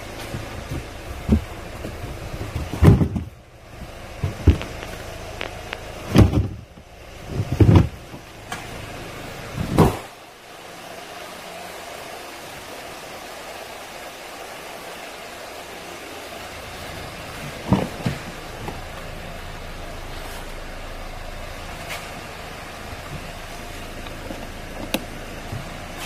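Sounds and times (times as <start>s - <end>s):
tailgate shutting: 0.0s - 10.2s, 16.7s - 26.0s
engine idling: 0.0s - 26.0s
heavy thumps: 0.1s - 8.6s.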